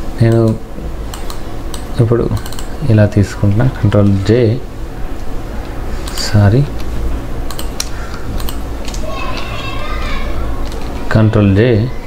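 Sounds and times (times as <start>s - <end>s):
low electrical hum: 0.0s - 12.0s
keyboard and mouse clicks: 0.3s - 2.7s, 6.0s - 9.5s, 10.6s - 11.0s.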